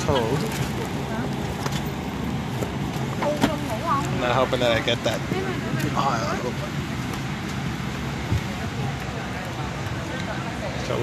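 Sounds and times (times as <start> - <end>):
cabin ventilation rush: 0.0 - 11.0
faint passenger voices: 0.0 - 11.0.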